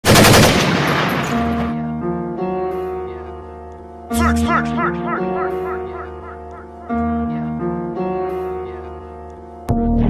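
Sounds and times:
automatic gunfire burst: 0.0 - 1.3.

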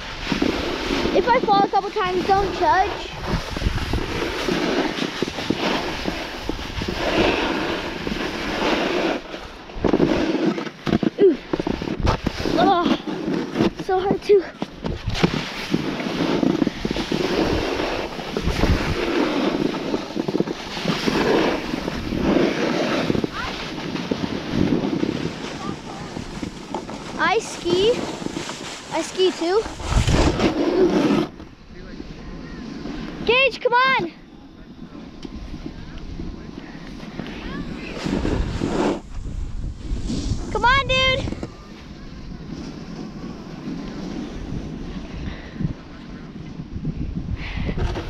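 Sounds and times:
wind on microphone: 0.0 - 33.5, 34.4 - 48.0
snowboard scraping over snow: 0.0 - 48.0.

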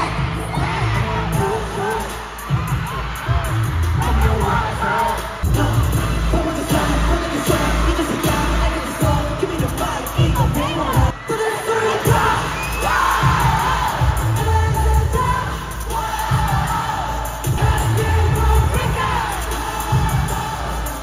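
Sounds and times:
pounding bass beat: 0.0 - 11.2, 12.0 - 21.0
audience cheering: 0.0 - 21.0
pop music over pa: 0.0 - 21.0
sung vocals: 0.0 - 21.0.

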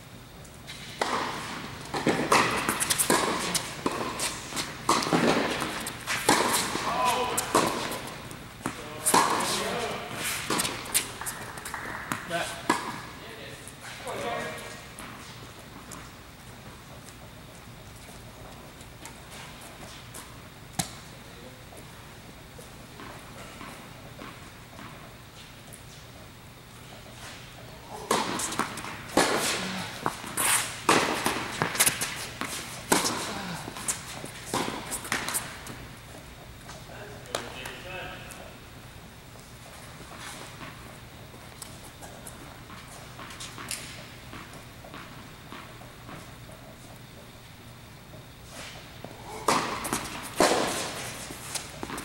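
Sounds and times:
tennis ball bouncing on court: 0.7 - 13.2, 13.8 - 17.6, 19.8 - 21.8, 27.2 - 38.5, 39.9 - 47.3, 48.0 - 52.0
tennis ball hitting racket: 0.7 - 13.2, 20.7 - 21.0, 27.9 - 38.3, 48.0 - 52.0.

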